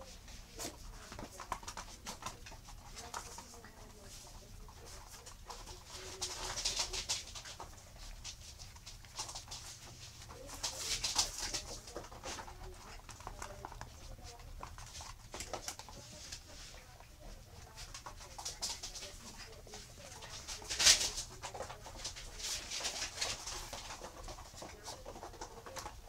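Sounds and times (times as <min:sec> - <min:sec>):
claws scrabbling on hard floor: 0:00.4 - 0:26.0.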